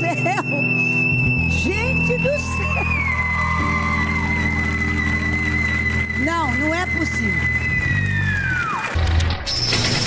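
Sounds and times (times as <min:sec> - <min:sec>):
backing music: 0:00.0 - 0:10.0.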